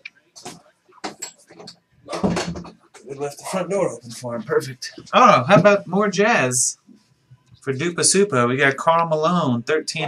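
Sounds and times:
door shutting with knock and rattle: 2.1s - 2.8s.

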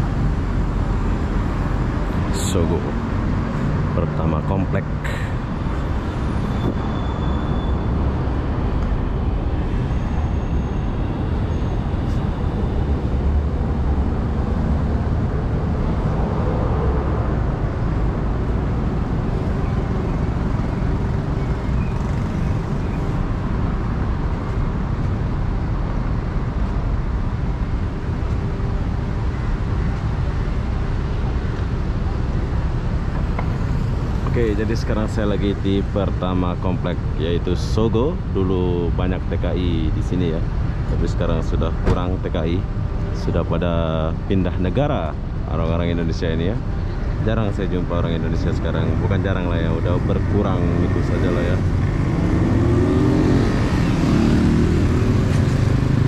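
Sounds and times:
road traffic: 0.0s - 56.0s.

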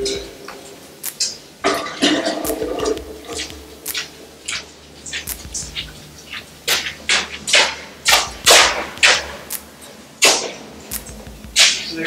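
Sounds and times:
footsteps splashing through water: 1.2s - 11.9s.

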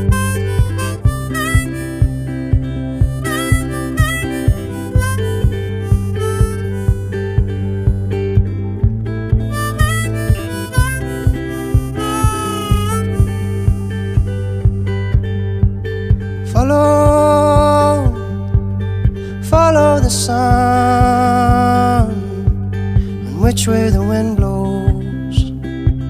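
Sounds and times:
harmonica melody: 0.0s - 23.4s
steady beat: 0.0s - 26.0s.

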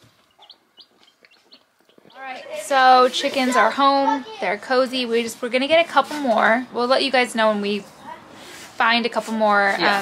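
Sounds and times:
baby chicks peeping: 0.0s - 3.8s.

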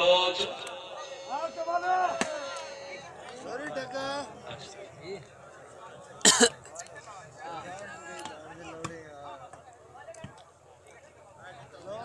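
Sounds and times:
chatter of spectators: 0.0s - 12.0s
loud cough: 6.2s - 6.7s.

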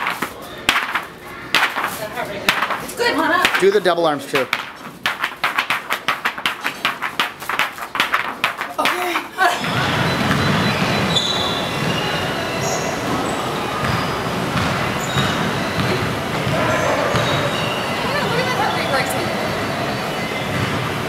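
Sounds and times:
exercise machines whirring: 0.0s - 21.0s
faint voices talking: 8.6s - 21.0s.

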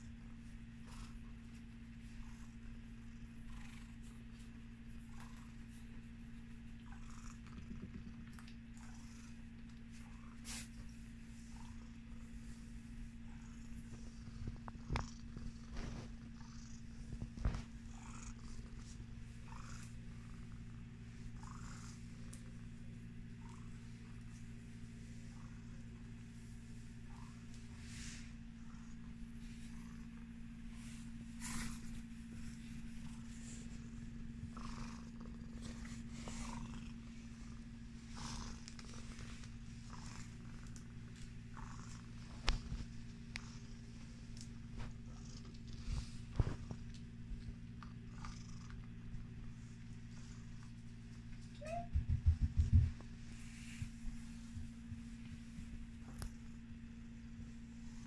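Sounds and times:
cat purring: 0.0s - 58.0s.

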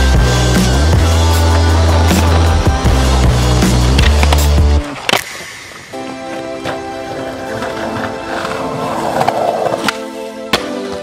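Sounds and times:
background music: 0.0s - 11.0s
skateboard wheels rolling on concrete: 0.0s - 11.0s
skateboard tail cracking: 1.4s - 11.0s.

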